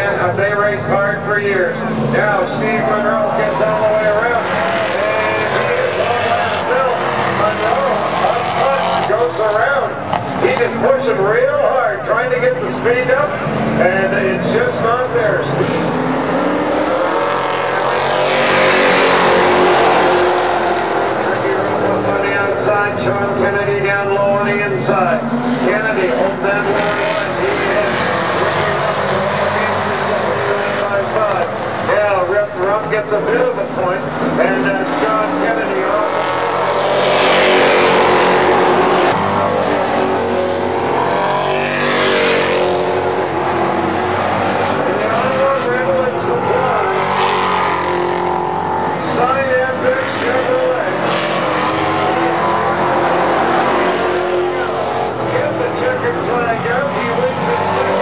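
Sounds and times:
cars passing close: 0:00.0 - 0:58.0
racing car engines: 0:00.0 - 0:58.0.

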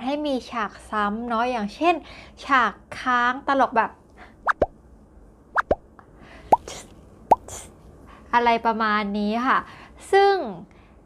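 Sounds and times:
cartoon plop sound effects: 0:05.6 - 0:05.8, 0:06.5 - 0:07.5.

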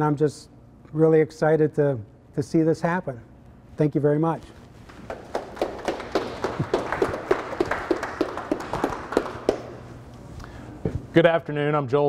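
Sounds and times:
audience applauding: 0:04.9 - 0:10.0.

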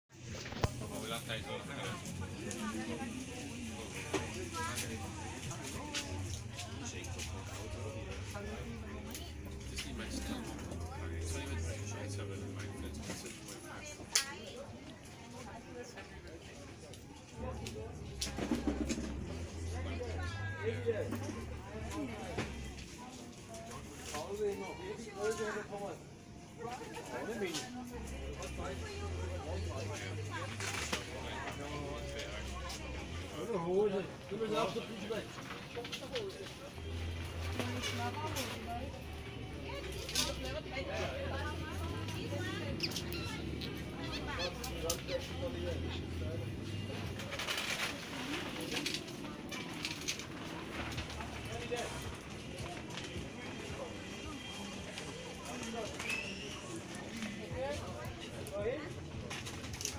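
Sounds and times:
indistinct voices talking: 0:24.9 - 0:59.9.

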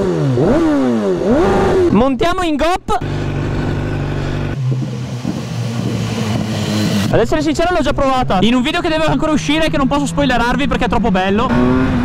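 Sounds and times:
motorcycle engine running: 0:03.0 - 0:12.0.

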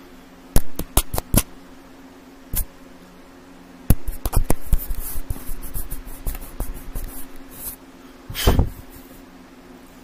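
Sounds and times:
hand rubbing and bumping microphone: 0:03.9 - 0:09.2.

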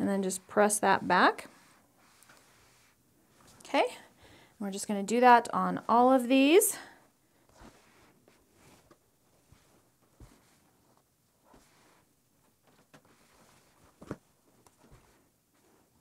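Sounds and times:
soft fabric rustles: 0:00.0 - 0:04.2, 0:04.8 - 0:16.0.

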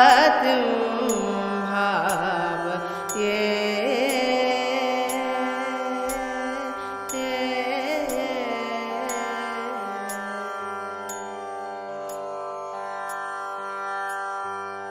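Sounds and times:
ornamented vocal or instrumental melody: 0:00.0 - 0:14.9
faint percussive ticks: 0:01.1 - 0:01.4, 0:02.0 - 0:02.3, 0:02.9 - 0:03.4, 0:04.0 - 0:05.3, 0:06.1 - 0:06.3, 0:07.1 - 0:07.4, 0:08.0 - 0:08.4, 0:11.1 - 0:11.3, 0:13.1 - 0:13.3, 0:14.0 - 0:14.3.

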